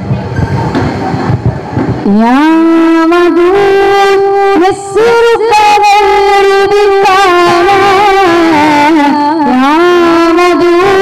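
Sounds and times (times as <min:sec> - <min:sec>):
low rumble through public address: 0:00.0 - 0:04.8.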